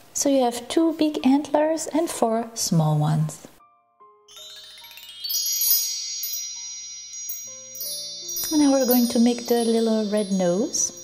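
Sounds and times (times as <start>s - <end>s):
bright high chimes: 4.3s - 11.0s.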